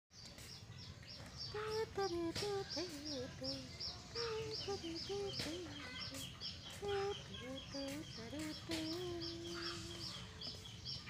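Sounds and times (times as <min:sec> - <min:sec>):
chickens clucking: 0:00.2 - 0:11.0
chicks peeping: 0:00.2 - 0:11.0.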